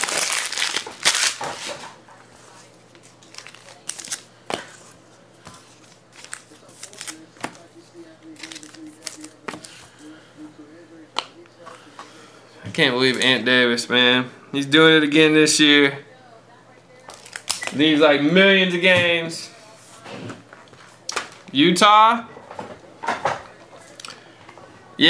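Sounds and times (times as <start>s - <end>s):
plastic crinkling and rustling: 0.0s - 2.0s, 2.9s - 4.9s, 5.6s - 7.7s, 8.4s - 9.7s, 17.1s - 17.8s.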